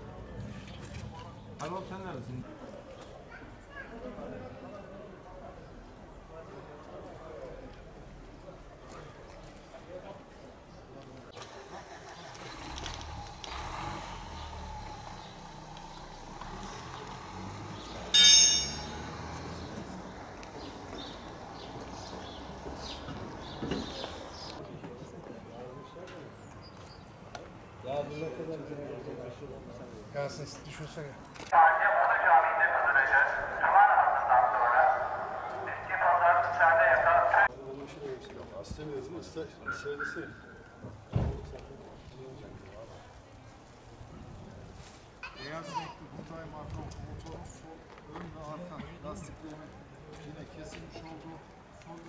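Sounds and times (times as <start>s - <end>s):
vehicle engine rumble: 11.3s - 24.6s
tinny voice through small speaker: 31.6s - 37.5s.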